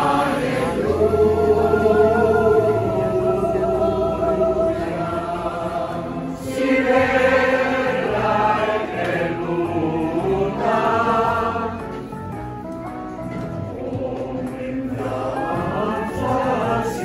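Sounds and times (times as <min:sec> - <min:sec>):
choir-like group singing: 0:00.0 - 0:12.2, 0:13.7 - 0:17.0.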